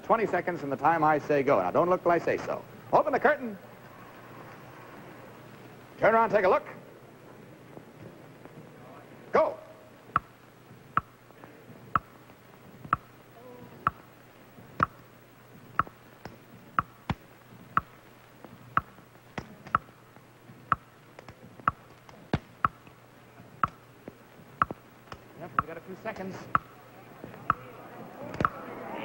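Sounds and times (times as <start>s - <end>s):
clock ticking: 11.0s - 11.2s, 11.9s - 12.2s, 12.8s - 13.1s, 13.8s - 14.1s, 14.7s - 15.0s, 15.7s - 18.0s, 19.6s - 19.9s, 20.7s - 20.9s, 21.6s - 21.9s, 23.6s - 23.8s, 24.6s - 24.8s, 26.4s - 27.6s.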